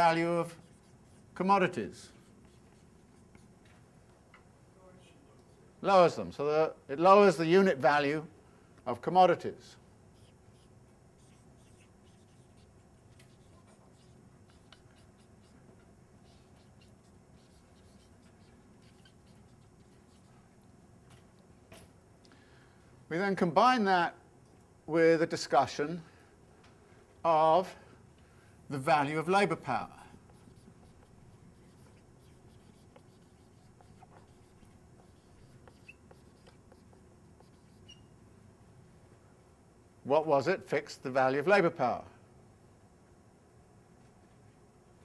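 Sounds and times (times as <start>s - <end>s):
faint writing sounds: 0.0s - 3.9s, 5.0s - 5.8s, 10.1s - 22.0s, 29.3s - 38.2s
small scratches and ticks: 0.3s - 3.8s, 10.1s - 21.9s, 29.8s - 38.1s.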